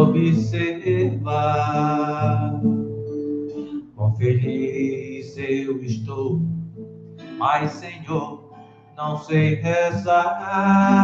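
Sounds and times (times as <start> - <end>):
man singing: 0.0 - 2.8, 4.0 - 6.4, 7.3 - 11.0
acoustic guitar: 0.0 - 11.0.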